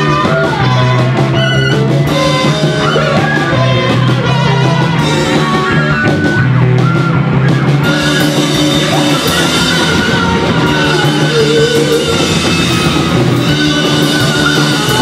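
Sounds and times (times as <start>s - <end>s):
drum kit: 0.0s - 15.0s
electric guitars: 0.0s - 15.0s
live rock band playing: 0.0s - 15.0s.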